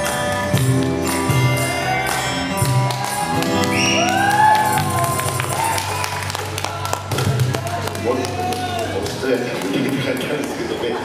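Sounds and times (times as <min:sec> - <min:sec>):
acoustic band playing: 0:00.0 - 0:09.2
scattered clapping: 0:00.0 - 0:10.9.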